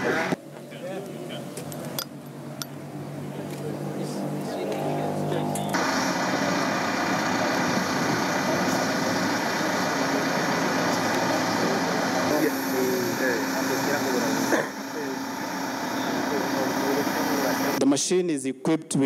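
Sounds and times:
people talking: 0:00.0 - 0:02.0, 0:03.2 - 0:05.8, 0:07.3 - 0:15.3, 0:15.9 - 0:19.0
diesel engine running: 0:02.2 - 0:17.8.

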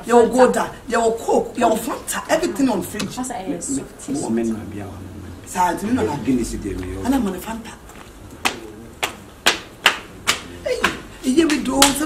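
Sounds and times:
sandal footsteps on paving: 0:06.7 - 0:09.6.

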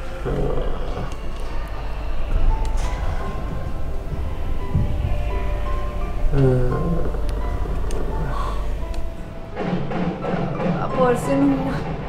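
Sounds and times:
low dense rumble: 0:00.0 - 0:09.6.

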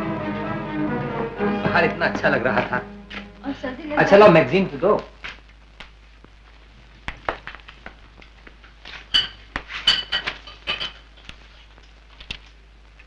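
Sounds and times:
cup and saucer clinking: 0:09.1 - 0:11.0.

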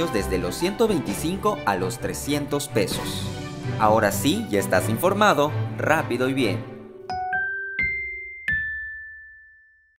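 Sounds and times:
chime jingle notes: 0:07.1 - 0:10.0.

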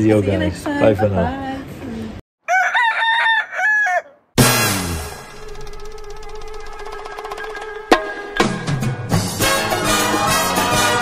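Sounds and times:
rooster crowing: 0:02.4 - 0:04.3
loud hit: 0:04.4 - 0:06.9
music with drums: 0:06.2 - 0:11.0.

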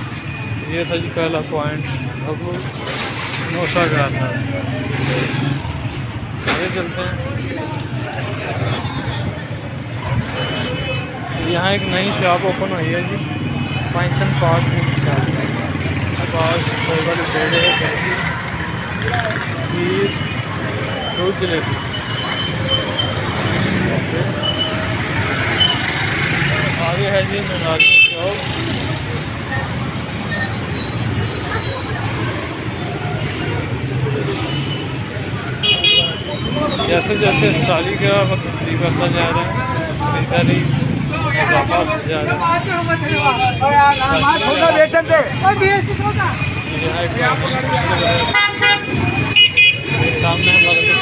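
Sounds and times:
vehicle engines rumbling: 0:00.0 - 0:51.0.

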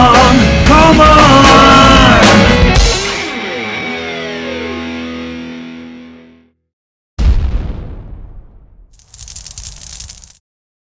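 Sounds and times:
rock band playing: 0:00.4 - 0:05.9.

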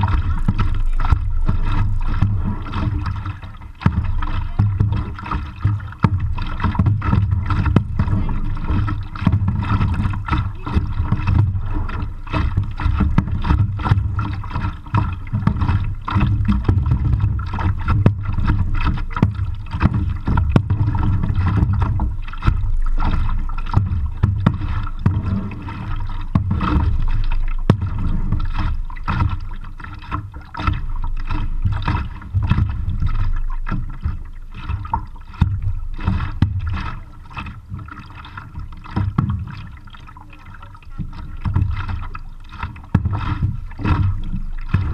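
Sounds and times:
muffled wash of water: 0:00.0 - 0:44.9
paddle knocks and splashes: 0:00.0 - 0:44.9.

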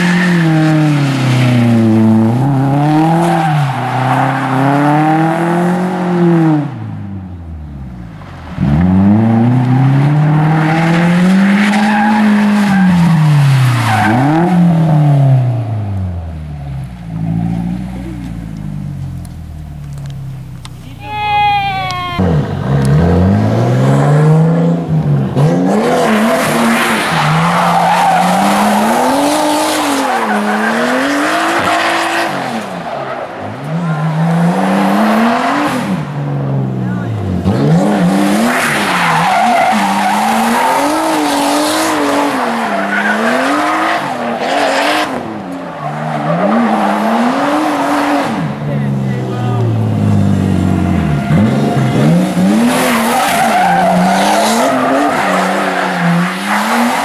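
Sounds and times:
tyres squealing on asphalt: 0:00.0 - 0:05.2, 0:09.8 - 0:15.8, 0:26.0 - 0:35.9, 0:37.1 - 0:57.0
car engine revving: 0:00.0 - 0:21.1, 0:21.7 - 0:57.0.

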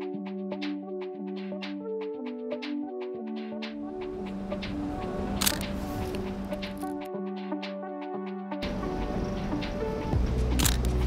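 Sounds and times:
background music: 0:00.0 - 0:11.0
camera shutter click: 0:05.4 - 0:05.8, 0:10.6 - 0:11.0.

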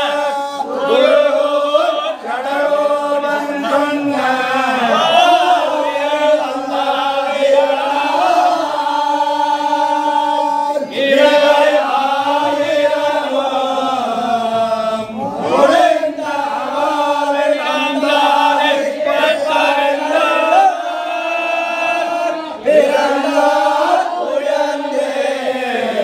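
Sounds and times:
men chanting a hymn: 0:00.0 - 0:26.0.

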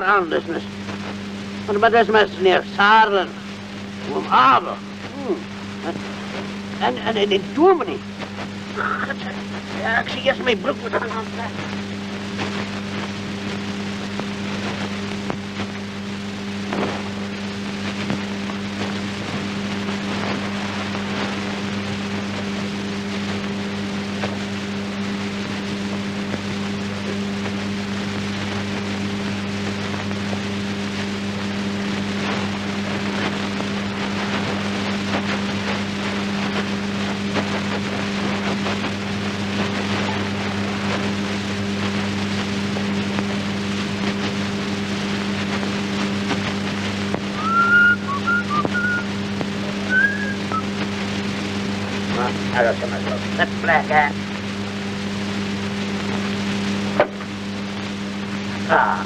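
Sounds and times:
film soundtrack hum and crackle: 0:00.0 - 0:59.0
man whistling: 0:47.4 - 0:49.1, 0:49.8 - 0:50.7.

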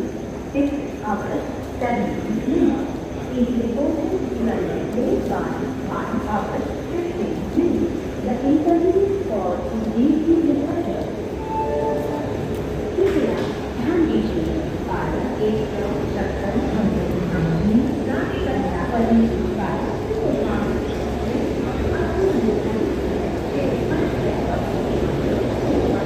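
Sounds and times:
people talking: 0:00.0 - 0:26.0
train coaches rumbling past: 0:00.0 - 0:26.0.

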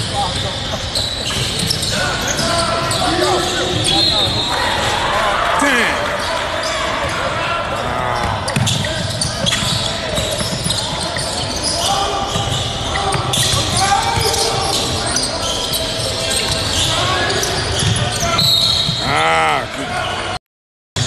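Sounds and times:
voices of players and spectators: 0:00.0 - 0:20.4.

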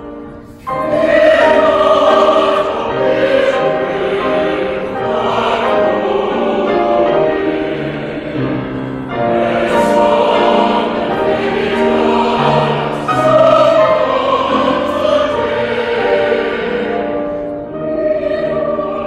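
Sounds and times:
church choir singing: 0:00.0 - 0:19.0.

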